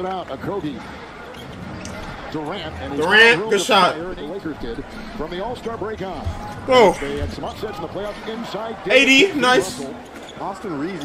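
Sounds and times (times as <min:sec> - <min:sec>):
commentator talking: 0:02.7 - 0:04.2, 0:05.4 - 0:08.0, 0:08.7 - 0:10.0.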